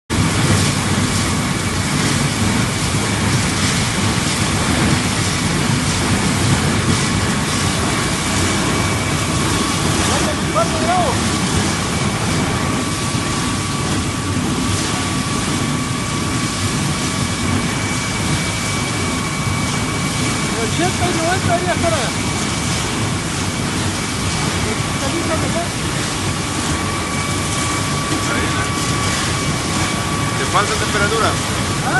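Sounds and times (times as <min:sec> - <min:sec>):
high whine: 0:00.1 - 0:31.9
pellet mill running: 0:00.1 - 0:31.9.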